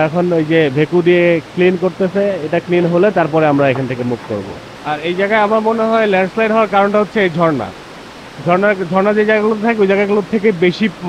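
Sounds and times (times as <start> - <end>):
person talking: 0.0 - 7.8
faint steady hiss: 0.0 - 11.0.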